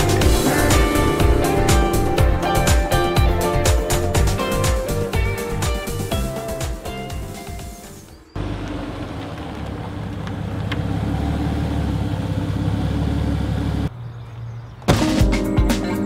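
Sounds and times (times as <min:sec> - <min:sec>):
car engine and exhaust running: 0:00.0 - 0:05.6, 0:08.3 - 0:14.0.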